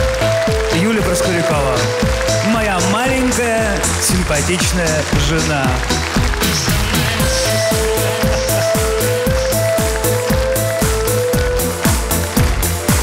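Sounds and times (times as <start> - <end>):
bass line: 0.0 - 13.0
drum beat: 0.0 - 13.0.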